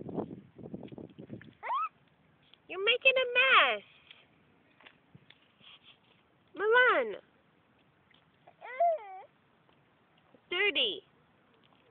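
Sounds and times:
toddler crying: 1.6s - 2.0s, 8.5s - 9.3s.

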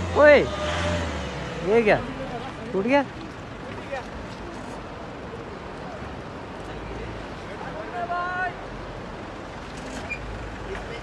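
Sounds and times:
outdoor noise: 0.0s - 11.0s
vehicle engine rumbling: 0.0s - 11.0s.

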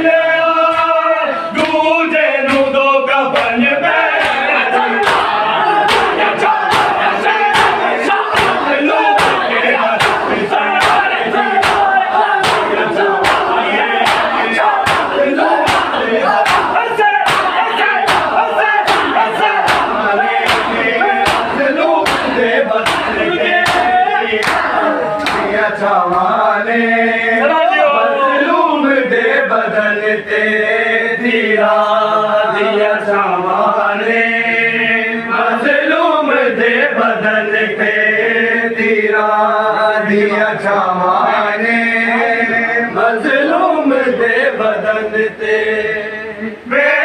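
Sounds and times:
men chanting together: 0.0s - 47.0s
men slapping chests in unison: 0.6s - 1.0s, 1.6s - 26.4s.

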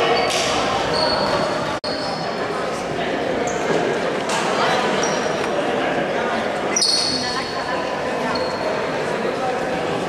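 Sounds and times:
voices echoing in a gym: 0.0s - 10.0s.

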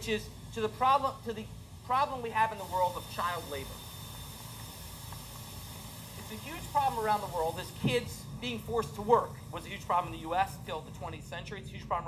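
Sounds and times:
low hiss and rumble: 0.0s - 12.0s.

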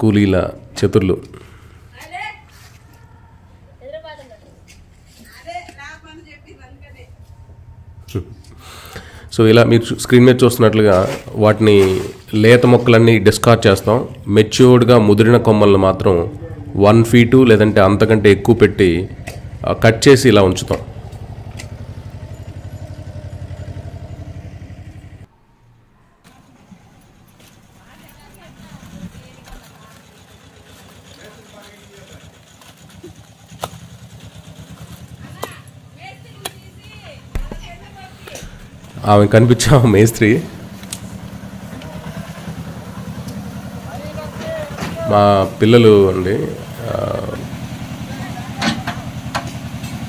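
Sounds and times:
small engine chugging: 5.4s - 10.4s, 13.6s - 25.3s, 26.6s - 50.0s.

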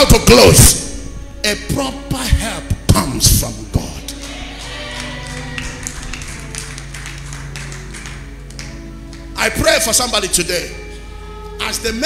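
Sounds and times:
soft music of held chords: 0.0s - 12.0s.

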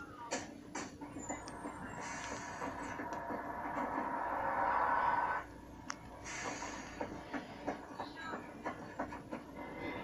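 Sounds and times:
cartoon soundtrack from television: 0.0s - 10.0s.

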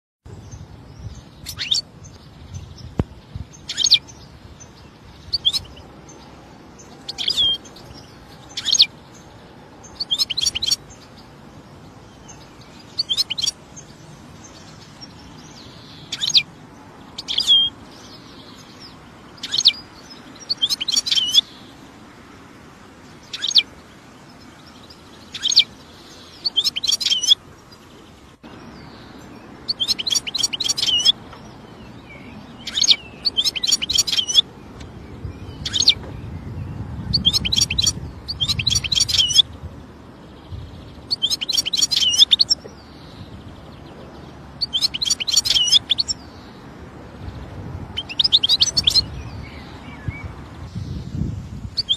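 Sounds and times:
goldfinch chirping and twittering: 0.4s - 21.7s, 23.2s - 23.7s, 24.3s - 27.9s, 28.5s - 46.6s, 47.2s - 51.9s.

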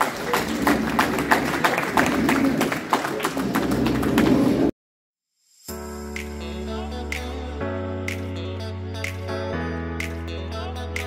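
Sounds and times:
people applauding: 0.0s - 4.7s.

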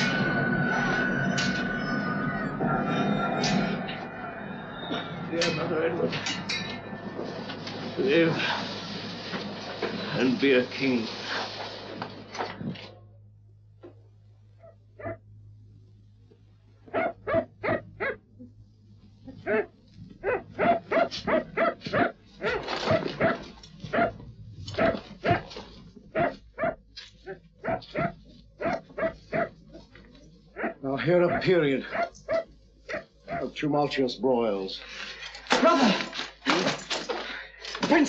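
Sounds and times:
steady low hum: 0.0s - 38.0s
dog barking: 14.6s - 15.2s, 16.9s - 18.2s, 19.4s - 24.2s, 24.8s - 25.5s, 26.1s - 29.6s, 30.6s - 33.6s.

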